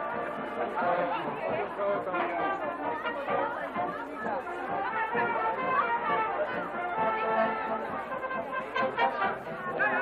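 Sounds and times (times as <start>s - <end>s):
background music: 0.0s - 10.0s
crowd chattering: 0.0s - 10.0s.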